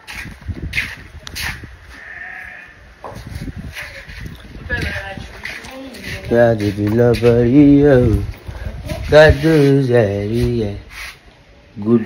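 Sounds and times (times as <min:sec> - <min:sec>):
farm animal bleating: 0:01.9 - 0:02.8.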